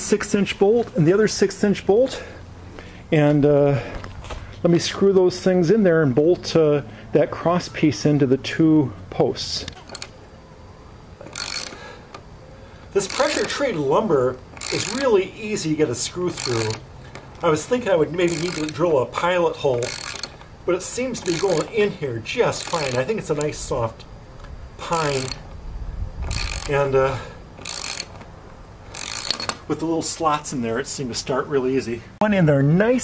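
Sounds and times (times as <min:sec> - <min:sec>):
ratchet wrench clicking: 0:09.7 - 0:10.2, 0:11.2 - 0:12.2, 0:13.0 - 0:18.9, 0:19.7 - 0:23.7, 0:24.8 - 0:25.5, 0:26.2 - 0:28.2, 0:28.9 - 0:29.6.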